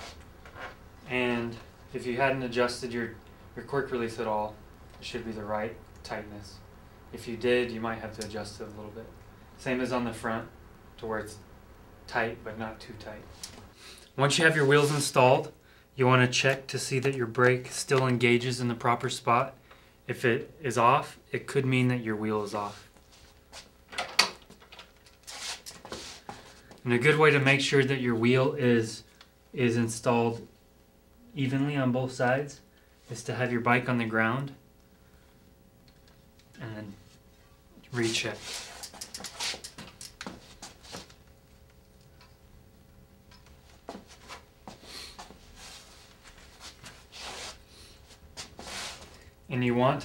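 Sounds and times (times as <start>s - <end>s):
short rustle: 25.1s - 26.7s, 37.9s - 41.2s.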